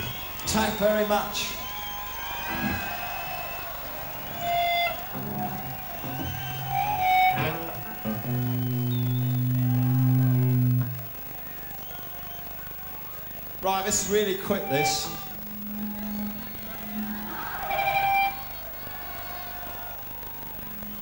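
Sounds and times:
quiet stage hum: 0:00.0 - 0:21.0
electric guitar notes: 0:02.5 - 0:12.4, 0:13.1 - 0:21.0
bass guitar notes: 0:04.1 - 0:11.6, 0:13.6 - 0:18.8, 0:20.1 - 0:21.0.

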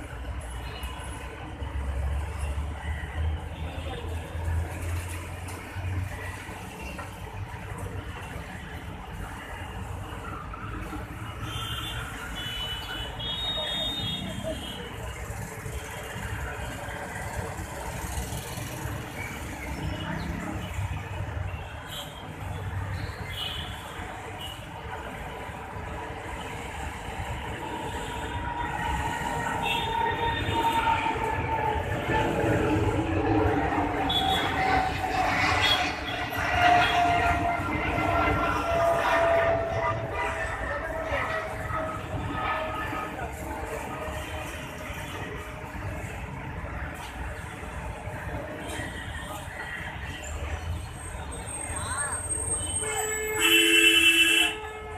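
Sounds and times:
vehicle horn steady tone: 0:52.8 - 0:54.9.

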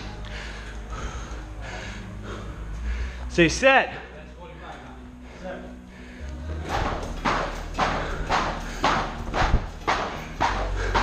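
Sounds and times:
battle rope slapping floor mat: 0:06.7 - 0:11.0.

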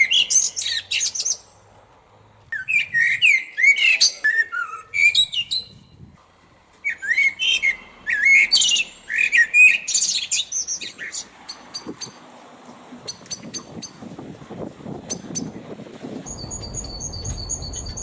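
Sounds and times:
songbird chirps and trills: 0:00.0 - 0:01.7, 0:06.7 - 0:14.2, 0:14.9 - 0:18.0.

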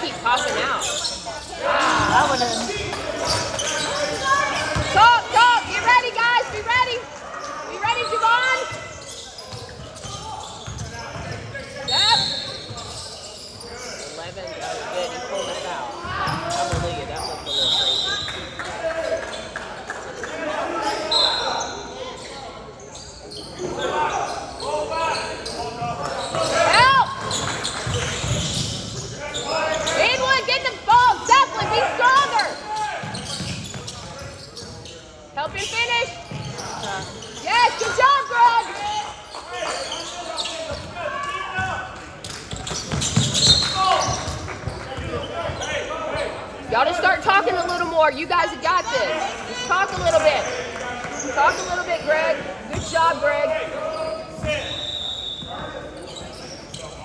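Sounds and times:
sneakers squeaking on hardwood: 0:00.0 - 0:06.8, 0:07.4 - 0:18.6, 0:20.8 - 0:38.7, 0:39.3 - 0:57.0
basketballs bouncing: 0:02.0 - 0:07.0, 0:09.5 - 0:11.6, 0:16.0 - 0:17.1, 0:40.7 - 0:45.6
whistle blasts: 0:54.6 - 0:55.6.

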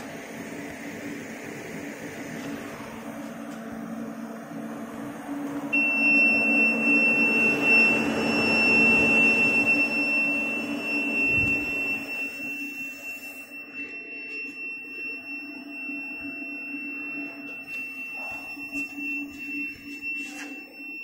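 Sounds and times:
laser cutter high-pitched whine: 0:00.0 - 0:21.0.

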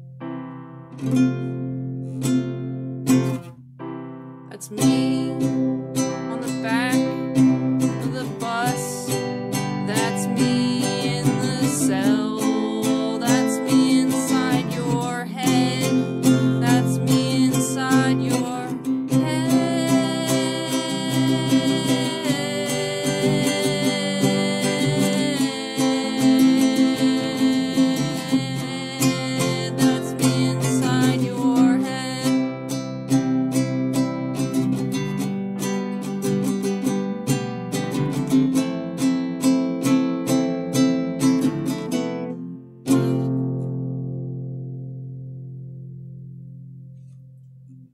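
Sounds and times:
strummed guitar: 0:00.0 - 0:47.9.

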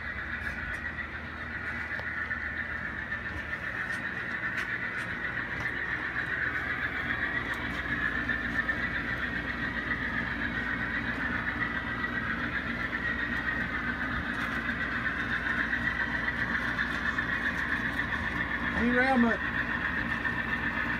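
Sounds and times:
model train whining and rumbling: 0:00.0 - 0:20.9.

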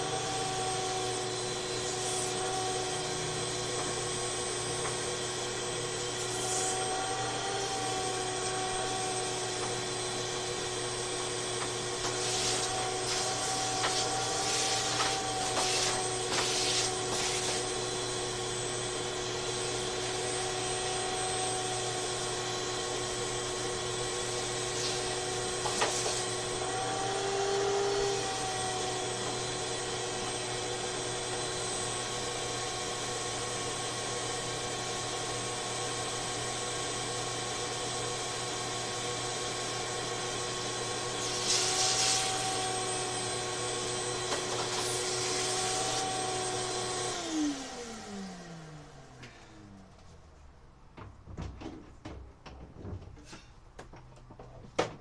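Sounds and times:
vacuum motor winding down: 0:00.0 - 0:16.4, 0:17.4 - 0:49.9
shop vacuum running: 0:00.0 - 0:51.8.

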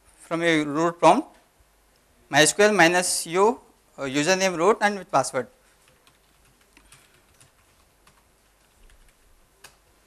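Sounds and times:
computer keyboard keystrokes: 0:05.8 - 0:09.8.

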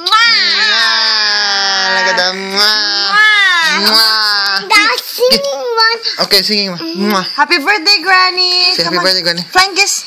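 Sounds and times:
child wailing: 0:00.0 - 0:04.8.

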